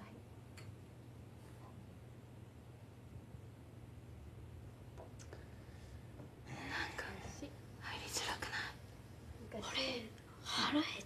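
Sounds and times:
faint low hum: 0.0 - 11.0
soft whispered speech: 6.5 - 8.8, 9.4 - 11.0.

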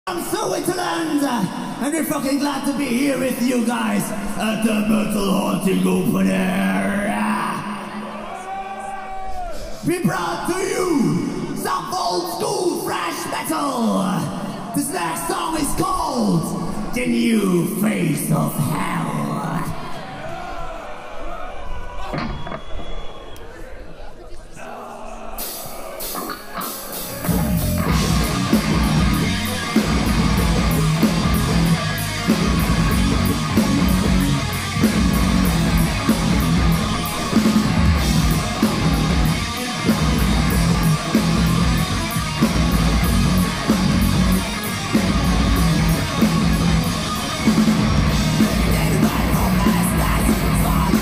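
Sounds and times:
heavy metal band playing live: 25.4 - 51.0.

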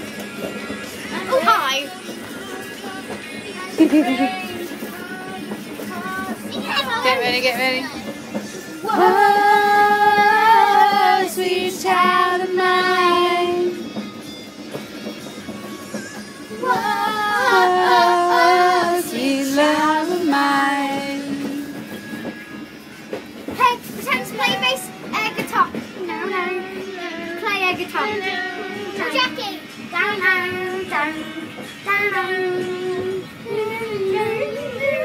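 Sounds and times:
high voices singing: 8.4 - 14.1, 15.9 - 22.6.

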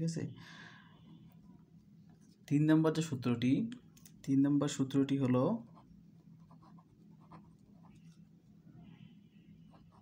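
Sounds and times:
pen scratching on paper: 5.7 - 8.2.

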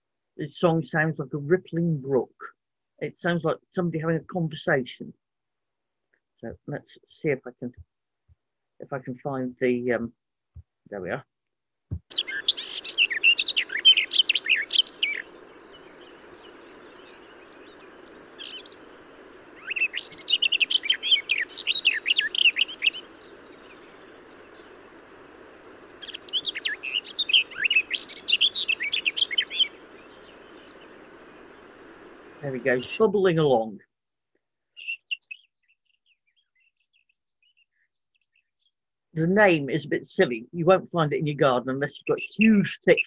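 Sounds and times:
faint background hiss: 0.0 - 5.1, 11.9 - 33.8, 39.2 - 43.0
warbler song: 12.0 - 33.9, 34.6 - 40.4, 41.2 - 43.0.

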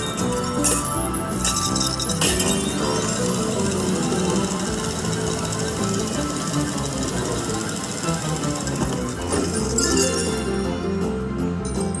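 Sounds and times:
slot machine bonus music: 0.0 - 12.0
fast rattling tick: 2.8 - 9.8.

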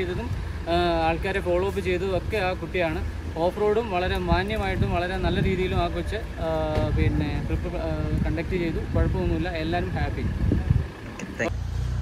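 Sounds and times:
low irregular rumble: 0.0 - 12.0.

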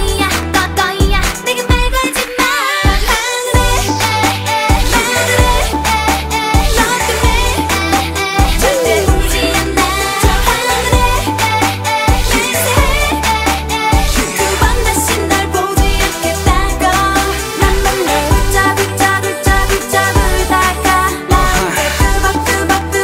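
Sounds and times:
dance-pop song with synth bass: 0.0 - 23.0.

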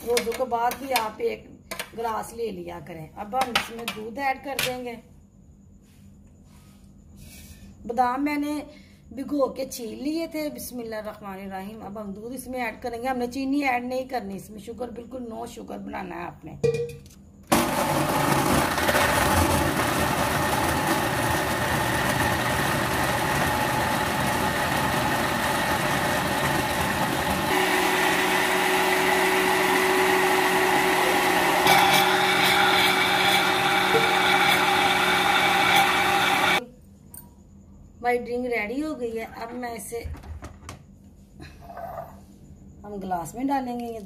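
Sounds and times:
blender motor running: 17.5 - 36.6.

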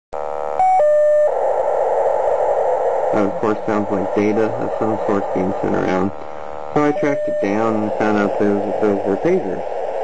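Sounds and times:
two steady tones: 0.2 - 1.4, 3.2 - 9.4
harsh rasping pager data burst: 2.4 - 10.0.

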